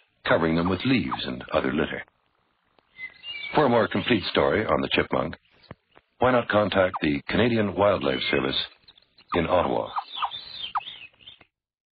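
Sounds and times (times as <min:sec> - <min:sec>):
chipmunk chirping: 0:00.4 - 0:01.6, 0:02.8 - 0:11.5.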